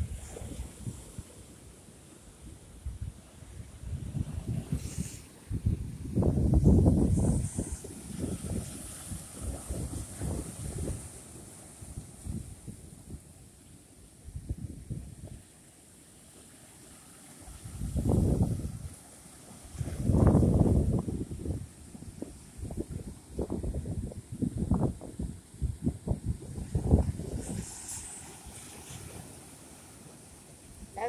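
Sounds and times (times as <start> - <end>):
wind buffeting microphone: 2.8 - 13.2, 17.6 - 18.9, 19.7 - 29.4.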